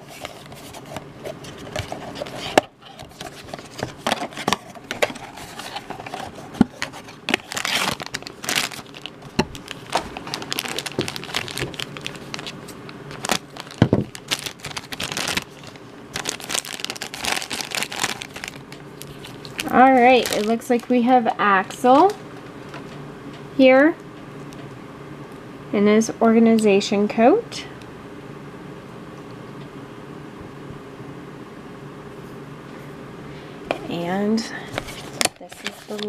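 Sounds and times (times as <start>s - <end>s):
foil bag crinkling: 0.0s - 22.2s, 34.8s - 36.0s.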